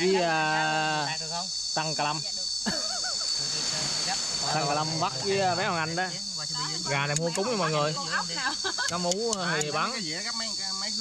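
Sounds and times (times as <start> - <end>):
high-pitched insect chorus: 0.0 - 11.0
men talking: 3.4 - 6.1, 8.9 - 10.1.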